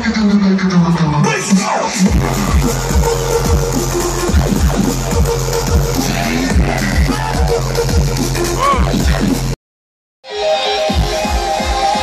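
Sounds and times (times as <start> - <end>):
loud electronic dance music: 0.2 - 9.6, 10.2 - 12.0.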